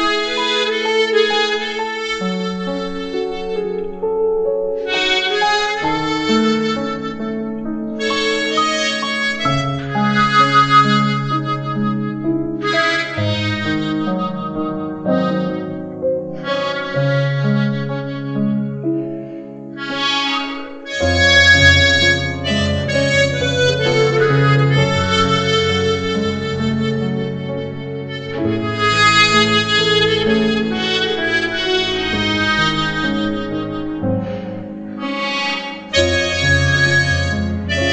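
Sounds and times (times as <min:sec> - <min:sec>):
harmonica melody: 0:00.0 - 0:37.9
piano backing track: 0:00.0 - 0:37.9.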